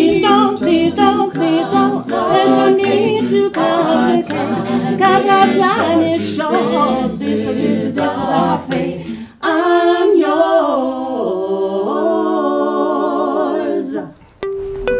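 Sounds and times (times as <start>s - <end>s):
a cappella group singing: 0.0s - 14.2s.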